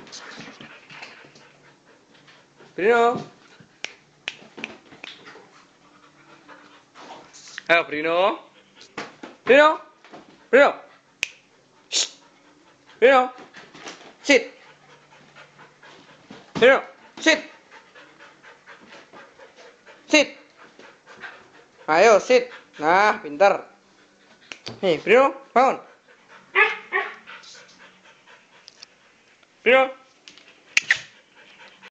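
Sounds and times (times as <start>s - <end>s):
dog panting: 0.0s - 3.9s, 4.6s - 9.4s, 10.1s - 29.5s, 30.4s - 31.9s.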